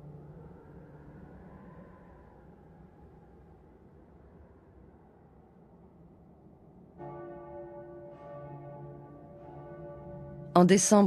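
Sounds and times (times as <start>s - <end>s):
low bell tolling: 7.0s - 11.0s.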